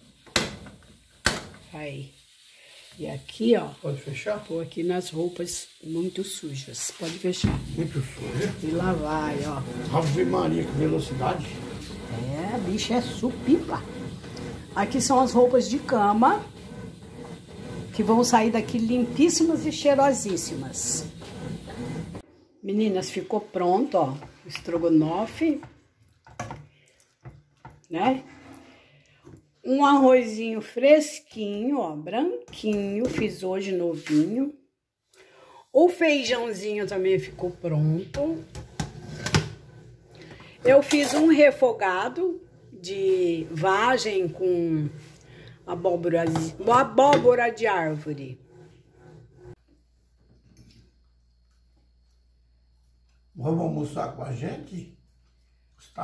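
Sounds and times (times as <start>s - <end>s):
wooden spoon stirring thick sauce: 2.2s - 22.2s, 36.6s - 49.6s.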